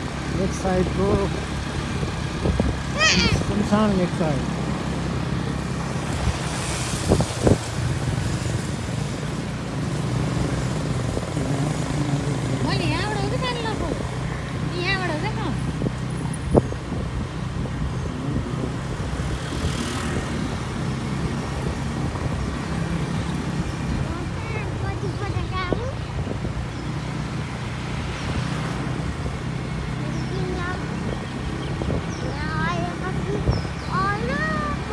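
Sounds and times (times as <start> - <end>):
road noise: 0.0 - 34.9
vehicle engine drone: 0.0 - 34.9
voices: 0.2 - 5.6, 10.7 - 16.5, 22.6 - 27.0, 28.7 - 34.9.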